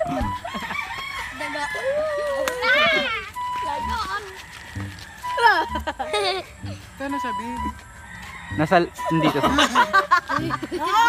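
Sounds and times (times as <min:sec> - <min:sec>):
rooster crowing: 0:00.2 - 0:03.1, 0:03.8 - 0:05.9, 0:07.9 - 0:11.0.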